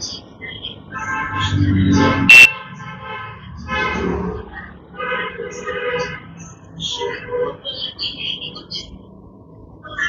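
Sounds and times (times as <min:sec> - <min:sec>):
muffled background voices: 0:00.0 - 0:02.2, 0:04.3 - 0:10.0
high-pitched honk: 0:01.1 - 0:02.6.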